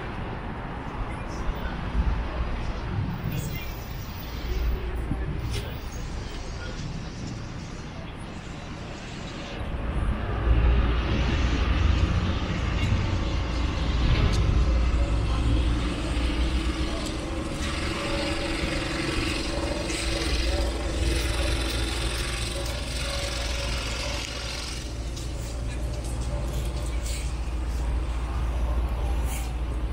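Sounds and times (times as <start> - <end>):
large vehicle engine rumble: 0.0 - 29.9
faint steady engine tone: 8.0 - 29.9.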